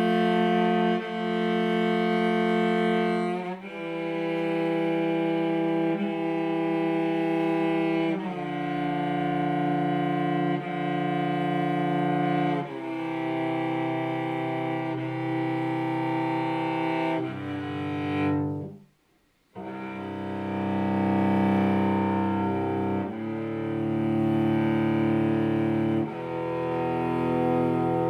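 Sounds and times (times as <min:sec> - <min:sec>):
cello long bowed notes: 0:00.0 - 0:18.9, 0:19.5 - 0:28.0.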